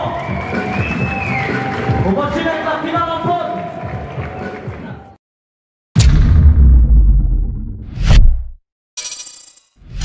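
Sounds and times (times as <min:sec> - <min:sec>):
bass-heavy hit: 0:06.0 - 0:08.6.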